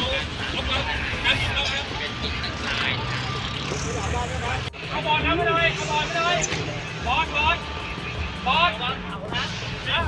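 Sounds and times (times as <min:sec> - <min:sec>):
people talking: 0:00.0 - 0:10.0
vehicle engine running: 0:00.0 - 0:10.0.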